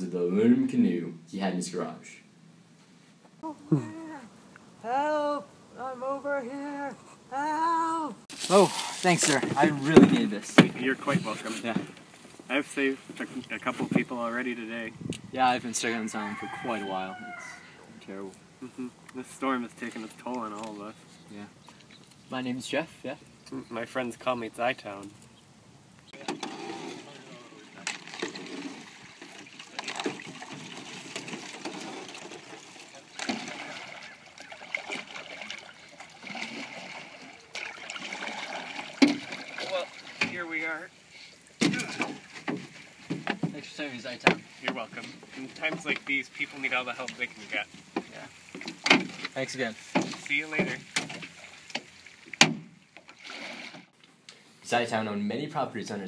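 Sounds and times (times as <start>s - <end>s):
paddling: 2.9s - 14.9s, 26.0s - 54.4s.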